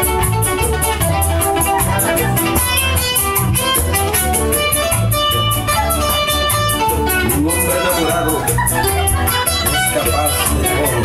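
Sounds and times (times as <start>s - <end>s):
bright high percussion beat: 0.0s - 11.0s
plucked guitar lead: 0.0s - 11.0s
steady bass: 0.0s - 11.0s.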